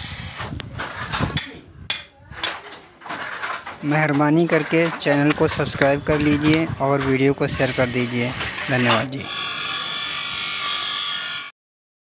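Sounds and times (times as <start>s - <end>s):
bench grinder grinding steel: 3.0s - 11.5s.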